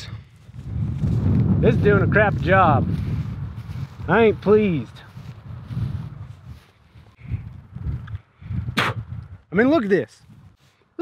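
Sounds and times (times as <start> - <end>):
wind rumble on microphone: 0.0 - 10.6
footsteps on grass: 0.1 - 7.8.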